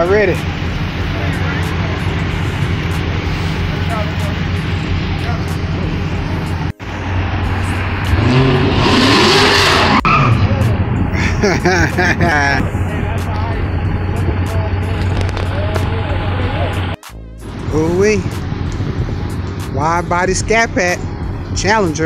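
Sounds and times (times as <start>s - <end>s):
car engine running and revving: 0.0s - 22.0s.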